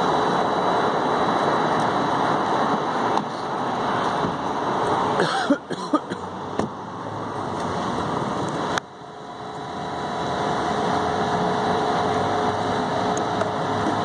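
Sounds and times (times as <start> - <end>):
car engine running: 6.3 - 14.0.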